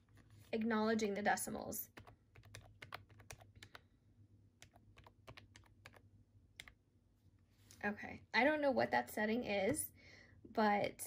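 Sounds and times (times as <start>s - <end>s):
calculator keys clicking: 2.0s - 3.8s.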